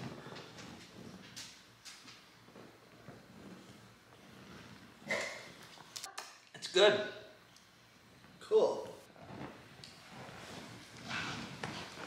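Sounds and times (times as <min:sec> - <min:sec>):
clothing rustling: 0:09.1 - 0:12.0.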